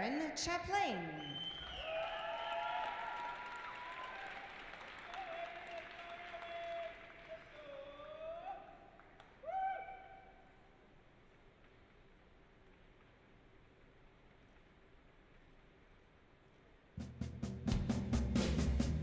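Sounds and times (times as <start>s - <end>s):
spectators whooping cheers: 1.0s - 10.5s
audience applause: 1.2s - 9.6s.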